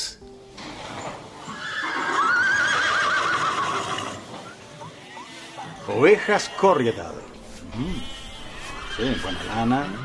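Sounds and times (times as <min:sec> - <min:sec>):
horse whinnying: 0:00.8 - 0:10.0.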